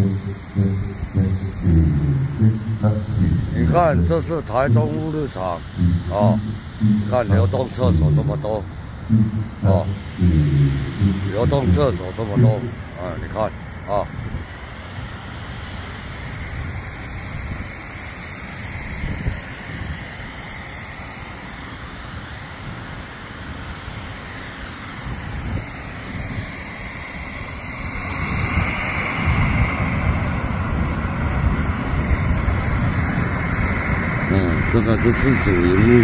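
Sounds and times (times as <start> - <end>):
low background rumble: 0.0 - 13.5.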